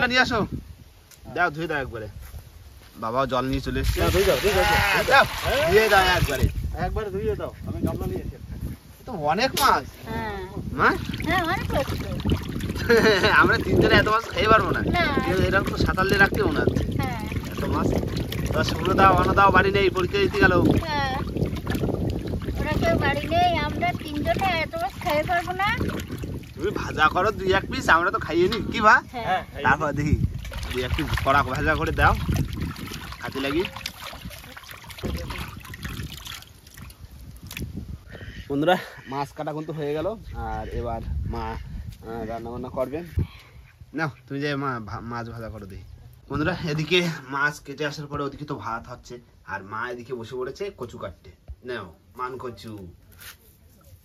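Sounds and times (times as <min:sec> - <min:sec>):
water sloshing in a metal basin: 0:03.7 - 0:06.6, 0:10.8 - 0:28.9, 0:29.6 - 0:37.6
voices talking: 0:09.6 - 0:21.4, 0:22.4 - 0:32.2.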